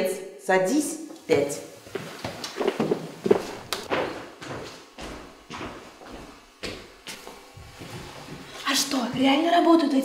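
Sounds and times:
footsteps: 1.8s - 9.4s
desks and chairs knocking: 2.3s - 6.9s.

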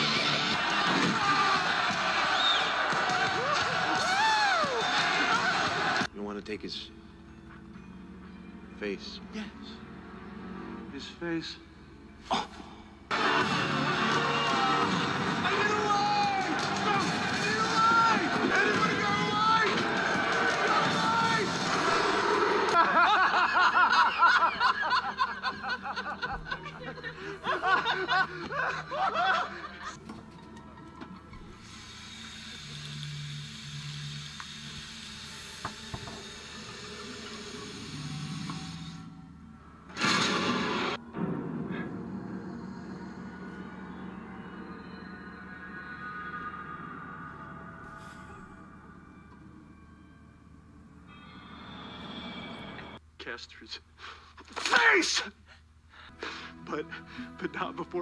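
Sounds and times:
dramatic film score music: 6.1s - 34.5s, 38.1s - 53.0s, 56.1s - 58.0s
man laughing wildly: 22.7s - 30.0s.

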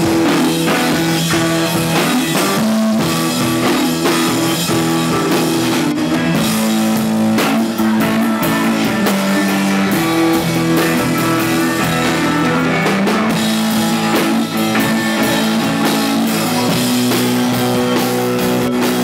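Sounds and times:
drum kit: 0.0s - 19.0s
electric guitar: 0.0s - 19.0s
keyboard: 0.0s - 19.0s.

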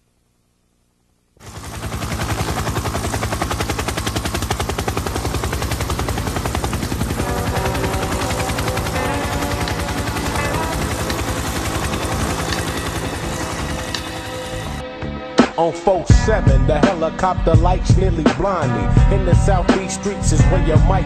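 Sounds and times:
helicopter rotor chopping: 1.4s - 14.8s
sustained music tones: 1.4s - 15.4s.

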